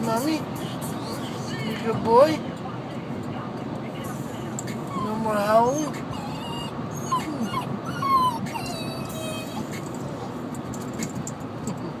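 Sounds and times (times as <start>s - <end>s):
puppy whimpering: 4.8s - 9.9s.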